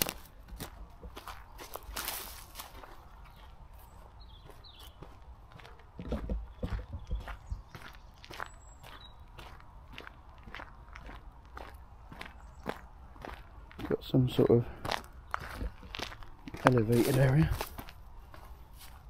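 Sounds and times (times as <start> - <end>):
footsteps on gravel: 0.0 - 19.0.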